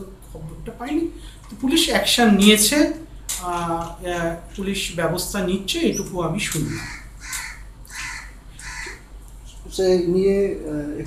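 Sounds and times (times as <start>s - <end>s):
crow cawing: 6.7s - 9.1s.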